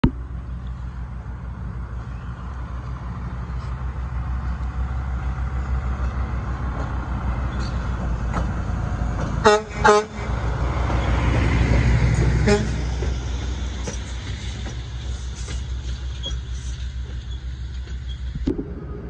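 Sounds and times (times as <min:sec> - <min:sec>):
diesel engine rumbling: 0:00.0 - 0:19.0
truck horn toots: 0:09.4 - 0:10.4, 0:12.4 - 0:12.9.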